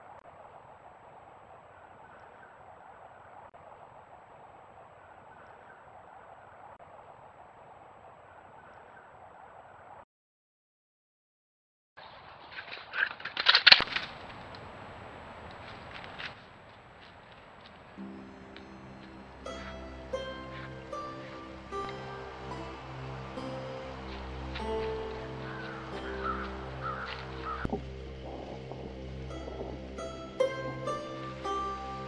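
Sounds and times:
deer footsteps in dry leaves: 12.0 - 32.0
faint woodland hiss: 17.3 - 32.0.

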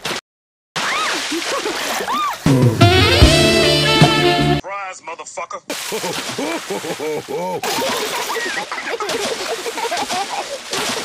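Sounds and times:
short rising and falling tones: 2.5 - 4.6.

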